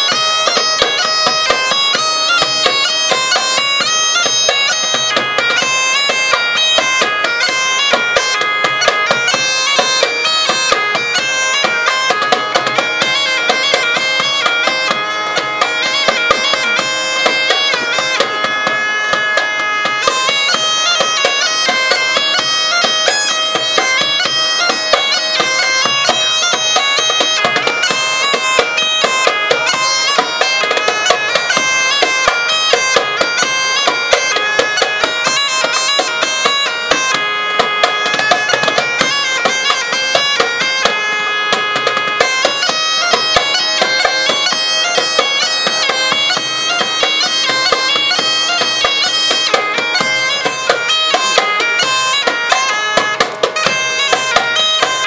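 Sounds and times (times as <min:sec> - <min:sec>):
bagpipe melody over drone: 0:00.0 - 0:55.0
djembe hand drum beating: 0:00.0 - 0:55.0.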